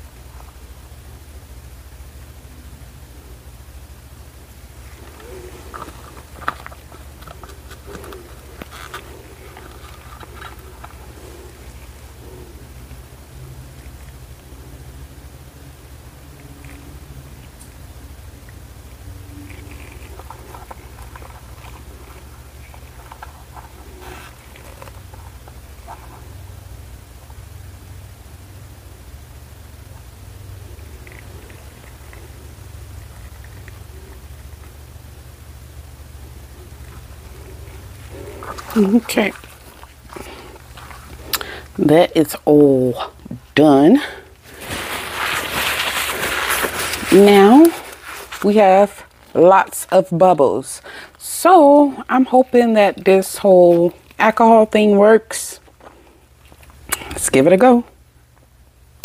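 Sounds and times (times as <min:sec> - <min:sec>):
steady low hum: 0:00.0 - 0:59.0
gloved hands clicking and rustling: 0:05.0 - 0:12.0, 0:44.4 - 0:49.4.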